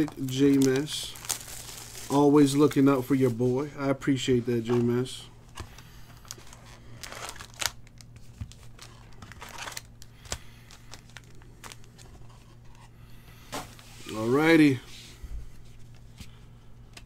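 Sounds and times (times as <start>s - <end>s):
card packs rustling and crinkling: 0.0s - 14.8s
low steady hum: 0.0s - 17.0s.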